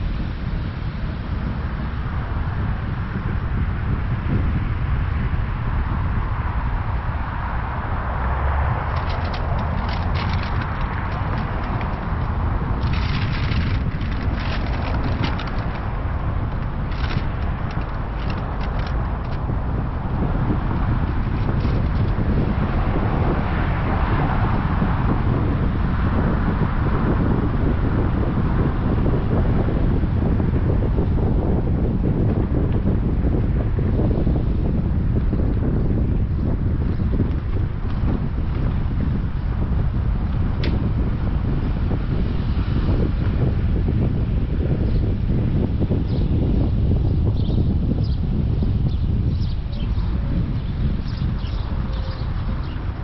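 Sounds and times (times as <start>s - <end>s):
rushing noise: 0.0s - 44.1s
car low rumble: 0.0s - 53.0s
wind buffeting microphone: 0.0s - 53.0s
car engine rumble from inside: 5.5s - 31.1s.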